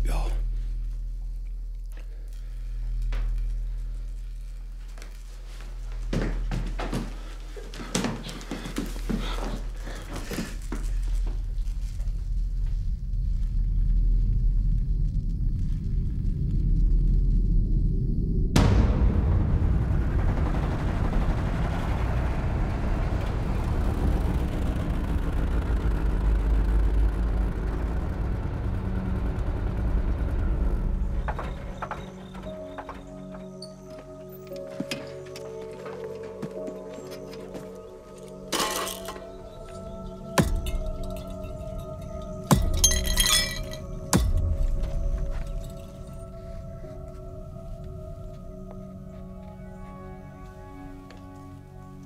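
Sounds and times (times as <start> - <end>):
deep low rumble: 0.0 - 7.6, 9.2 - 33.4, 37.7 - 50.0
dense wash of sound: 17.5 - 30.8
loud boom: 18.2 - 31.2
sustained musical tones: 19.8 - 52.0.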